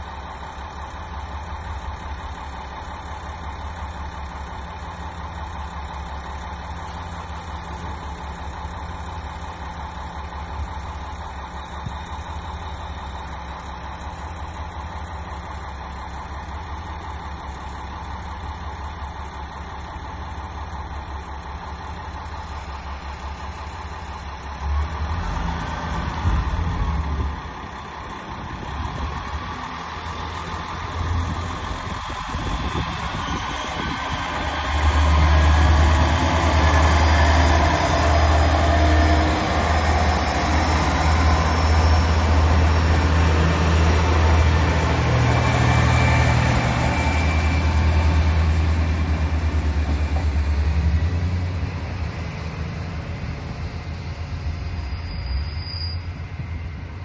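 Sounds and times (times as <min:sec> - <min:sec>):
diesel railcar engine idling and revving: 0:00.0 - 0:57.0.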